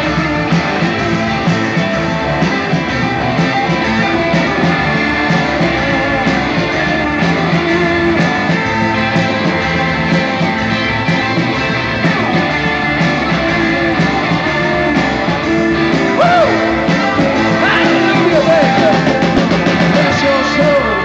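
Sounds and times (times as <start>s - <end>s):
drum kit: 0.0s - 21.0s
electric guitars: 0.0s - 21.0s.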